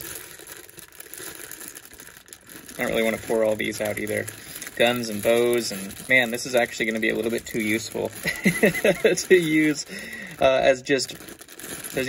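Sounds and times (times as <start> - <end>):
plastic bag crinkling: 0.0 - 12.0
small plastic pieces rattling: 0.0 - 12.0.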